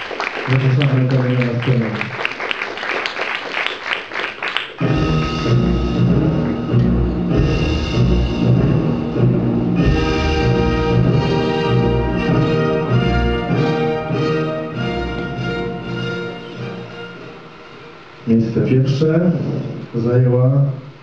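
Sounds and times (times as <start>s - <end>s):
audience applauding: 0.0s - 5.2s
orchestral music with timpani: 4.8s - 18.3s.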